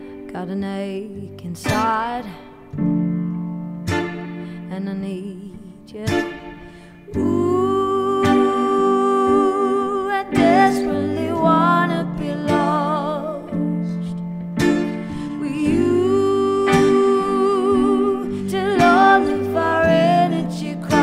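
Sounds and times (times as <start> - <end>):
woman singing: 0.0 - 2.7, 4.6 - 14.3, 14.9 - 21.0
acoustic pop on guitars and keyboard: 0.0 - 21.0.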